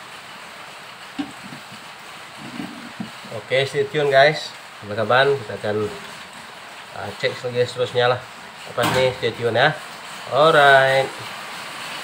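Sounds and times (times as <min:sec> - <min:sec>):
simmering curry hiss: 0:00.0 - 0:12.0.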